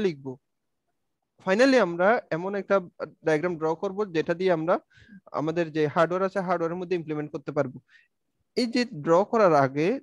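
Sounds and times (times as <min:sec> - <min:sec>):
man speaking: 0:00.0 - 0:00.5, 0:01.4 - 0:07.9, 0:08.5 - 0:10.0.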